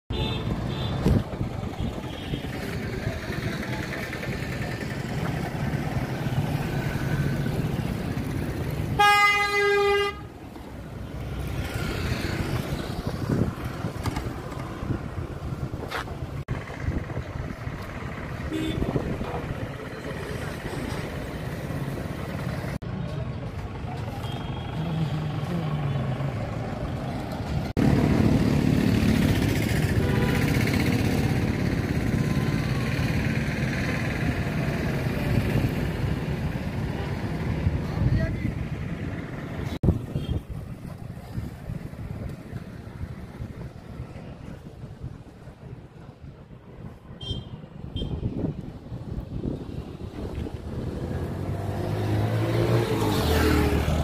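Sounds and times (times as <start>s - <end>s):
street traffic: 0.1s - 54.0s
people talking: 2.5s - 5.5s
vehicle horn honk: 9.0s - 10.3s, 18.5s - 19.0s, 47.2s - 48.2s.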